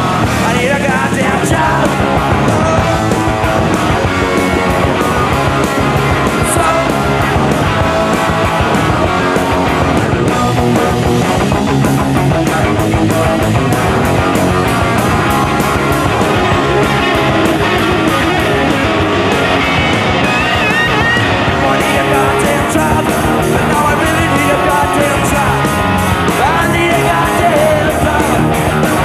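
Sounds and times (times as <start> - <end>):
punk rock band playing live: 0.0 - 29.0.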